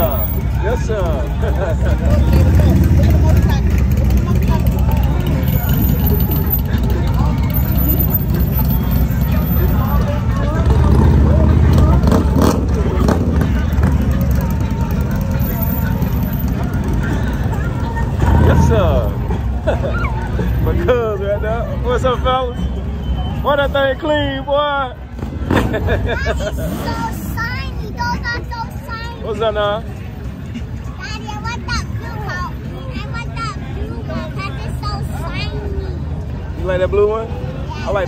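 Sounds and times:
motorcycle engines rumbling past: 0.0 - 21.9, 25.0 - 28.5
crowd chatter: 0.0 - 38.0.

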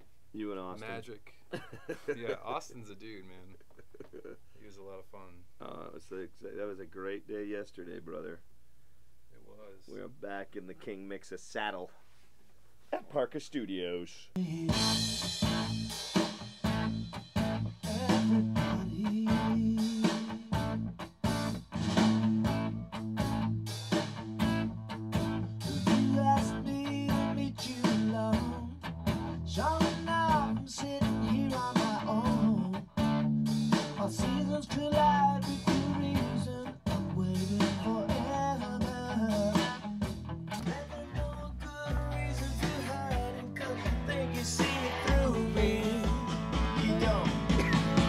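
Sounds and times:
electric guitar strumming: 14.8 - 48.0
sustained bass notes: 16.6 - 19.8, 20.5 - 48.0.

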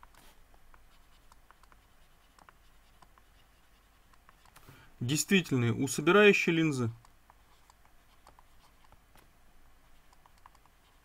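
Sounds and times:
stylus scratching on graphics tablet: 0.0 - 4.6, 7.3 - 9.0, 9.8 - 11.0.

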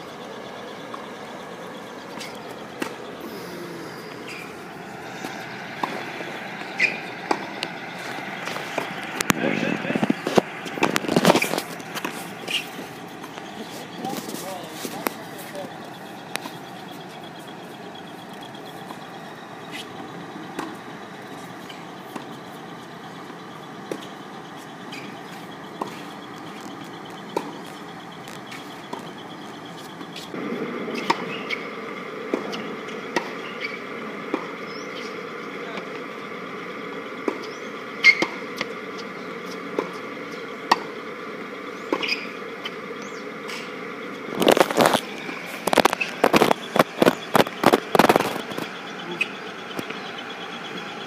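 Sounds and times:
tennis balls being hit: 2.1 - 3.2, 4.0 - 36.0, 37.2 - 42.8
people talking: 2.4 - 4.5, 8.4 - 19.1, 33.8 - 36.8, 45.8 - 50.0.

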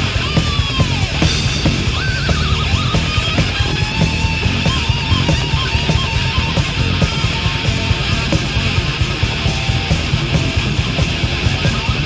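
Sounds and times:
thrash metal band playing live: 0.0 - 12.0.

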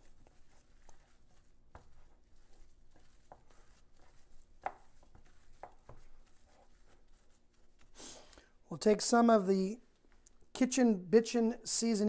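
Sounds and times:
hands kneading meat: 0.0 - 8.0.

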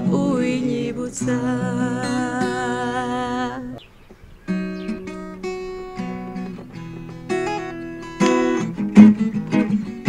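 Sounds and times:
acoustic guitar chord: 0.0 - 3.8, 4.5 - 10.0.

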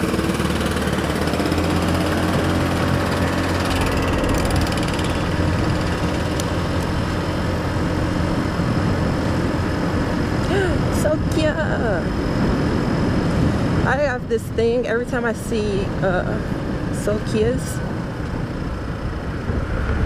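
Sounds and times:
scooter engine running: 0.0 - 20.0
wind and road noise: 0.0 - 20.0.

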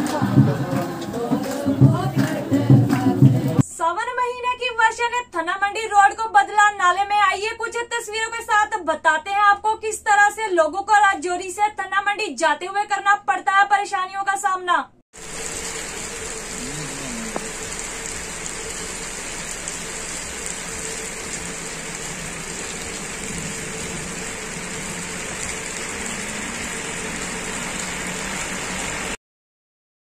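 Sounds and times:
rain on a wet road: 15.2 - 29.2
faint truck engine running: 15.3 - 29.2.

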